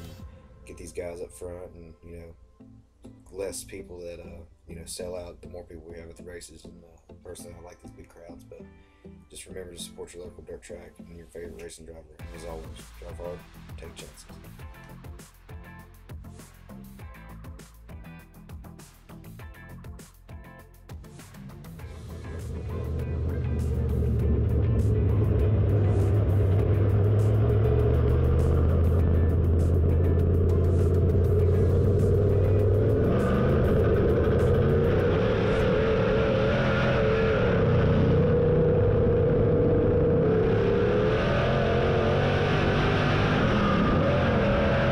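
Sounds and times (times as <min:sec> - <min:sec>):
race car engine: 0:21.8 - 0:44.9.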